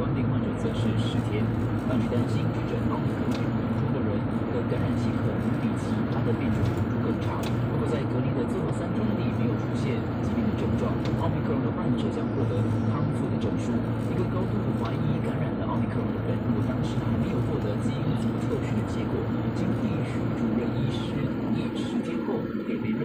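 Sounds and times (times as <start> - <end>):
car radio playing: 0.0 - 23.0
car road and engine rumble: 0.0 - 23.0.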